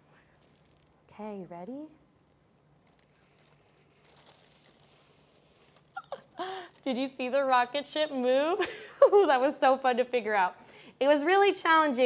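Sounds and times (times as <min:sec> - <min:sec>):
faint cardboard rustling scrape: 0:03.0 - 0:06.0.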